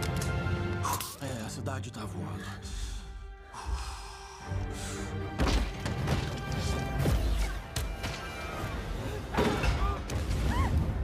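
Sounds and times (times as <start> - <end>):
dramatic orchestral film music: 0.0 - 11.0.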